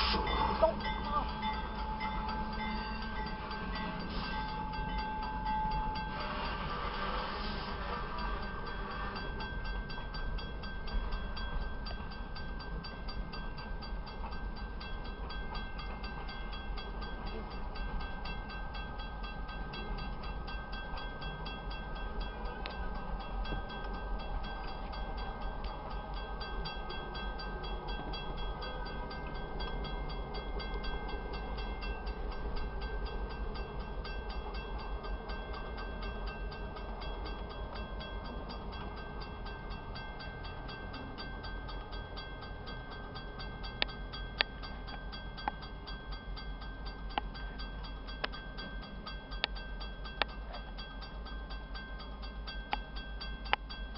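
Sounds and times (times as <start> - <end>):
freight train rumbling and rattling: 0.0 - 53.9.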